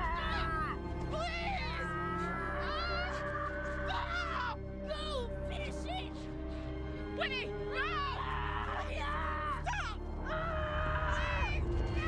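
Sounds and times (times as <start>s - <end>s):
dramatic music score: 0.0s - 12.0s.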